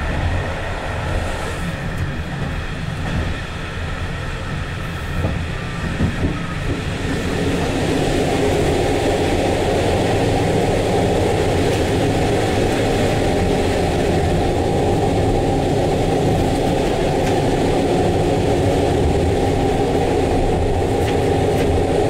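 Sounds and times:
train wheels rumbling on track: 0.0 - 22.0.

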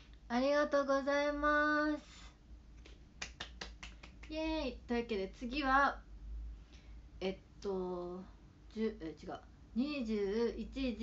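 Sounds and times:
quick light hand claps: 2.8 - 4.4.

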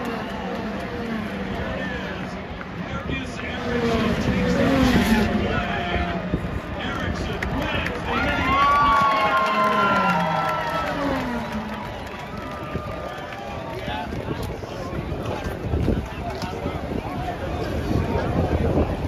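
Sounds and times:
crowd cheering and shouting: 0.0 - 3.1, 4.7 - 19.0.

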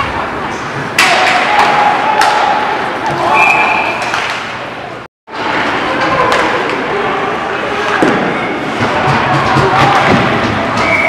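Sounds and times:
hockey puck hitting boards: 7.9 - 11.0.

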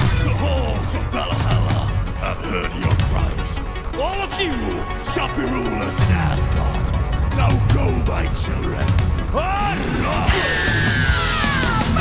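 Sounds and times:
metal band playing live: 5.0 - 12.0.

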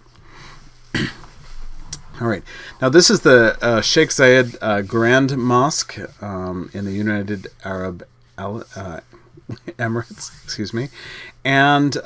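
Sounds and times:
man coughing: 1.0 - 1.3.

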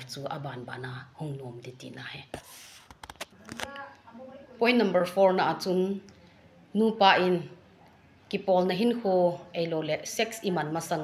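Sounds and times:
soft voiced sound: 3.3 - 4.7.

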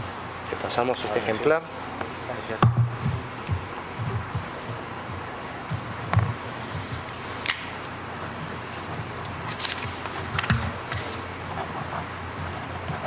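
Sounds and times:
paper rustle: 8.7 - 11.3.

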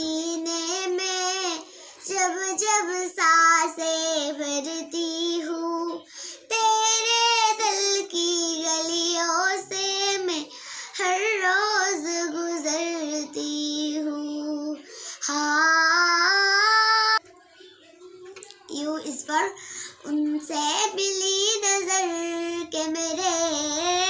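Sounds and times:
girl singing unaccompanied: 0.0 - 17.2, 18.4 - 24.0.

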